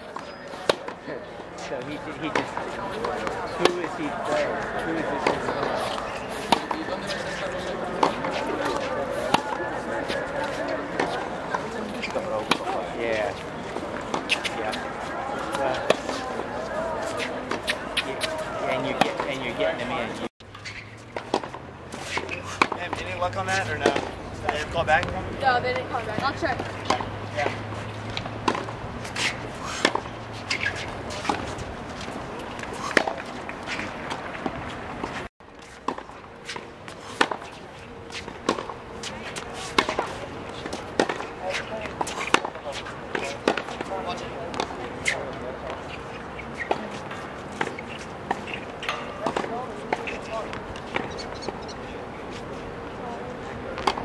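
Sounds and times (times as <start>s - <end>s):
tennis balls struck by rackets: 0.0s - 1.0s, 1.7s - 35.2s, 35.8s - 52.5s, 53.7s - 54.0s
spectators chatting: 0.0s - 54.0s
tennis balls bouncing on hard court: 2.2s - 12.8s, 20.6s - 35.2s, 35.8s - 51.8s.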